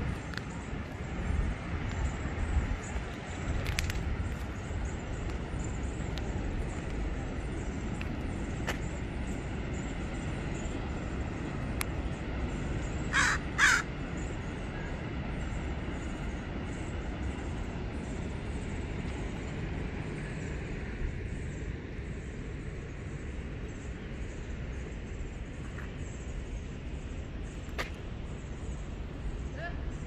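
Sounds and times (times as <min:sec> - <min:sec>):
bird cawing: 0:13.1 - 0:13.9.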